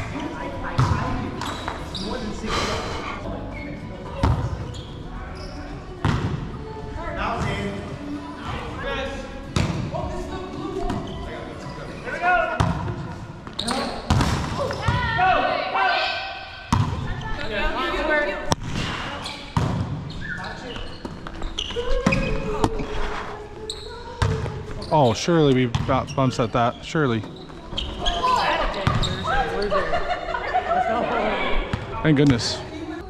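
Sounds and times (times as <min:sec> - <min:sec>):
volleyball slaps echoing in hall: 0:06.0 - 0:06.6, 0:09.5 - 0:10.0, 0:12.5 - 0:15.3, 0:16.4 - 0:17.5, 0:18.4 - 0:20.3.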